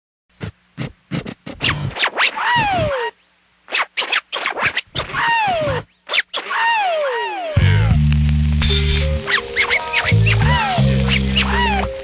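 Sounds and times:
record scratching on turntable: 0:00.3 - 0:12.0.

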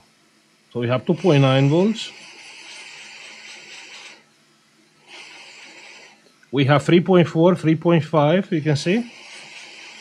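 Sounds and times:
cooling fan whirring: 0:00.0 - 0:10.0
hot air station hissing: 0:00.7 - 0:10.0.

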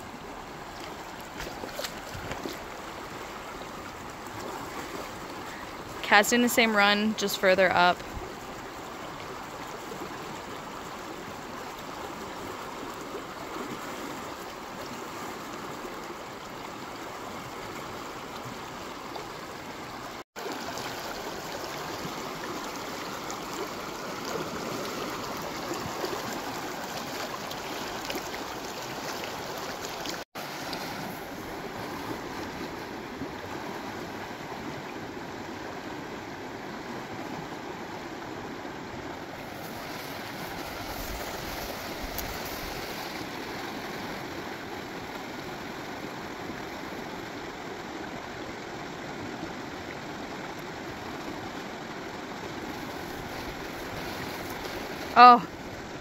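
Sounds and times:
river rushing over rocks: 0:00.0 - 0:56.0.

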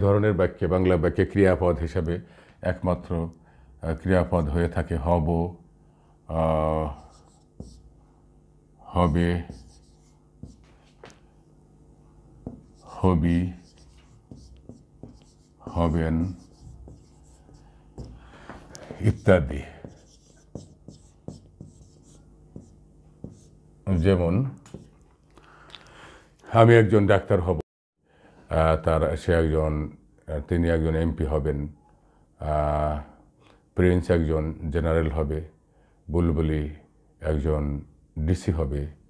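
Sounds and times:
marker scratching on whiteboard: 0:07.0 - 0:07.9, 0:09.4 - 0:11.1, 0:12.4 - 0:18.2, 0:18.8 - 0:23.6, 0:24.6 - 0:25.0.

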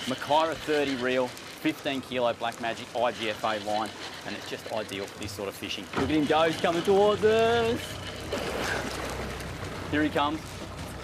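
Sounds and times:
outboard motors humming: 0:00.0 - 0:11.0
water churning around boat: 0:00.0 - 0:11.0.

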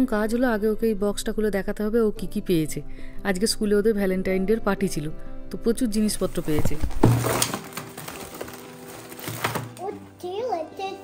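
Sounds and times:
background music: 0:00.0 - 0:11.0
items clattering onto wooden table: 0:06.5 - 0:09.9
child talking: 0:09.8 - 0:11.0.

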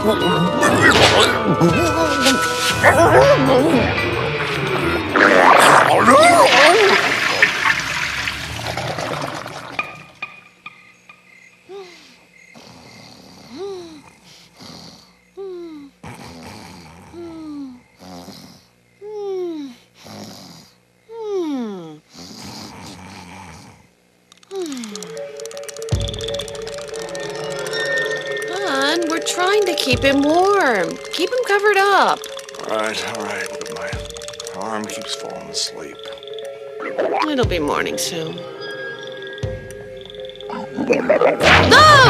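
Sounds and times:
music: 0:00.0 - 0:07.5, 0:24.6 - 0:42.0
cartoon retching: 0:00.6 - 0:01.7, 0:04.8 - 0:10.2
person snoring: 0:12.6 - 0:19.3, 0:20.0 - 0:23.9.

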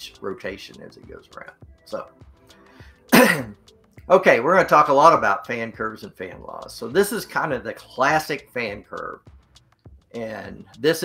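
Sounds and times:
man clearing throat: 0:03.1 - 0:03.6.

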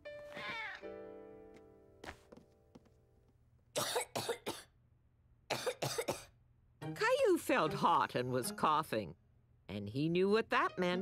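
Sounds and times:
boy coughing: 0:03.8 - 0:04.7, 0:05.5 - 0:06.3.

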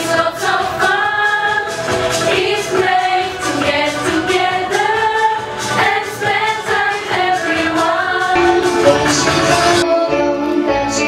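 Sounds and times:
girls singing together: 0:00.0 - 0:10.2.

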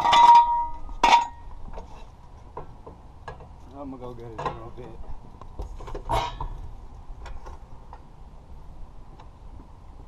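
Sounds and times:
metal jack stand clanking: 0:00.0 - 0:01.5, 0:05.8 - 0:06.6.

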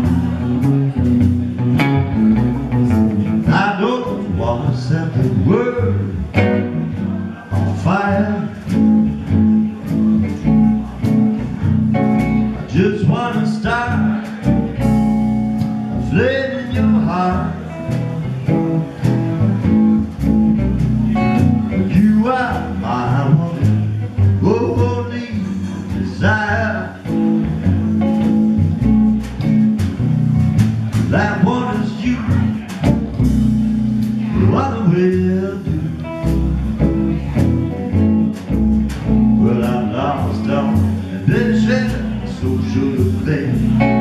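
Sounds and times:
drums: 0:00.0 - 0:44.0
electric guitar: 0:00.0 - 0:44.0
upright bass: 0:00.0 - 0:44.0.

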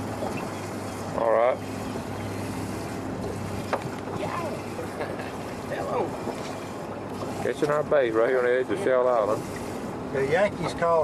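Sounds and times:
water noise: 0:00.0 - 0:11.0
wind: 0:00.0 - 0:11.0.

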